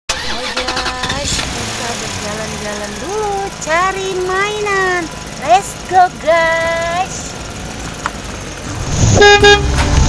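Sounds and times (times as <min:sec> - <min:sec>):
engine starting and running: 0:00.1 - 0:10.0.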